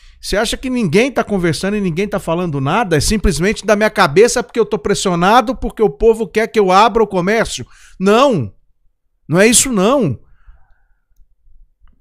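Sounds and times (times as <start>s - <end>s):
man speaking emphatically: 0.2s - 8.6s, 9.3s - 10.3s.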